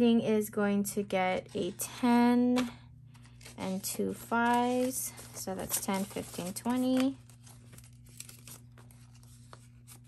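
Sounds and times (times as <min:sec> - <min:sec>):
banknotes crinkling and rustling: 0:02.6 - 0:10.0.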